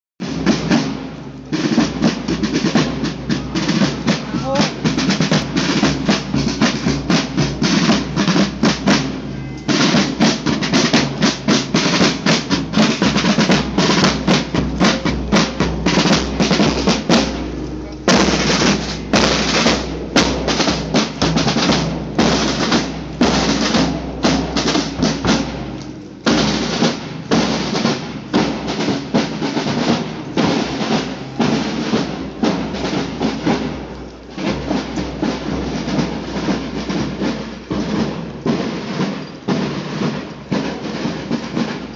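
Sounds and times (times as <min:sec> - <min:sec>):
snare and bass drums marching cadence: 0:00.2 - 0:41.9.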